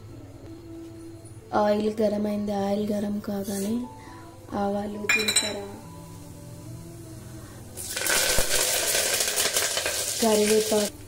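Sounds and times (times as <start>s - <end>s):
leaves sizzling in hot oil: 7.6s - 11.0s.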